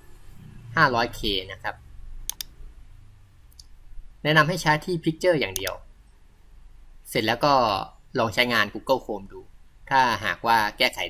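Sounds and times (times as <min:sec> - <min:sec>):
faint low hum: 0:00.0 - 0:11.0
mouse button clicking: 0:02.3 - 0:02.6.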